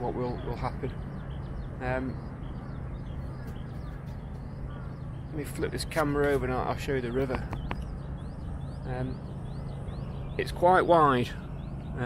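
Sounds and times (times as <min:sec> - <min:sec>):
faint bird chirps: 0:00.0 - 0:12.0
low outdoor rumble: 0:00.0 - 0:12.0.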